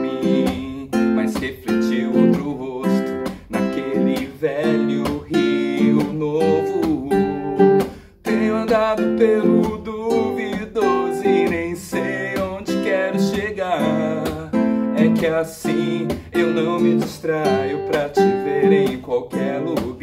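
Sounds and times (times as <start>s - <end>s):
classical guitar strumming: 0.0s - 20.0s
man singing: 0.0s - 20.0s.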